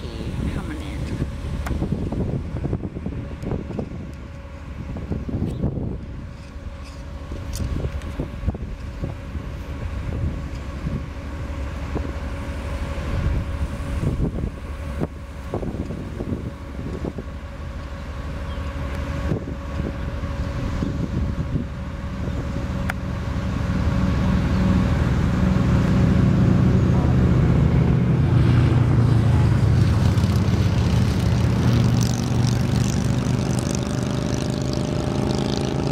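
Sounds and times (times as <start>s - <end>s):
engine running: 0.0s - 35.9s
wind buffeting microphone: 0.0s - 35.9s.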